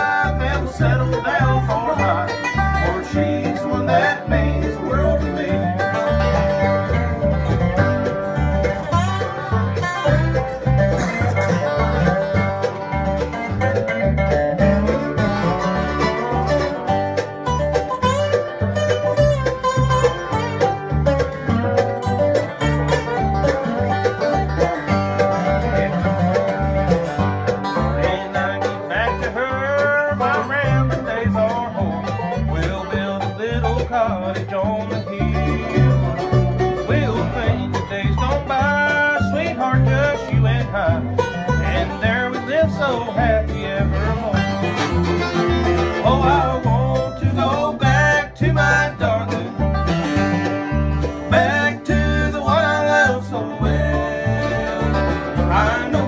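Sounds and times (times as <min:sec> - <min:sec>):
acoustic guitar: 0:00.0 - 0:56.0
banjo picking: 0:00.0 - 0:56.0
plucked upright bass: 0:00.0 - 0:56.0.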